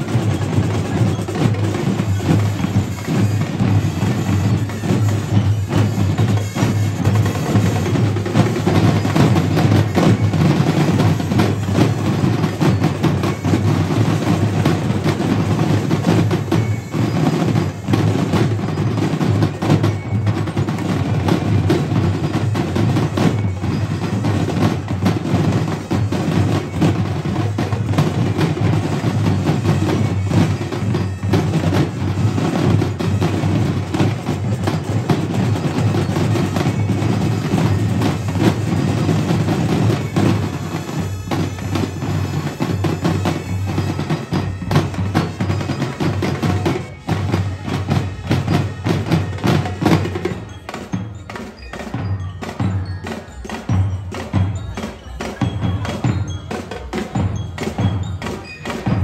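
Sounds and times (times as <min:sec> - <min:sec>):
drumline playing cadence: 0:00.0 - 0:59.0.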